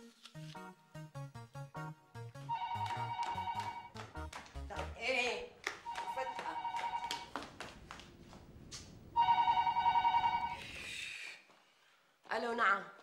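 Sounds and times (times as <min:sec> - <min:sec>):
telephone ringing with electronic trill: 0:02.5 - 0:04.0, 0:05.9 - 0:07.3, 0:09.2 - 0:10.6.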